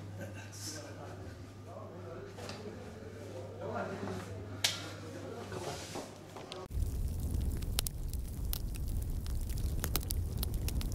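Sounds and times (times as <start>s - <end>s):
low rumble with crackles: 6.7s - 10.9s.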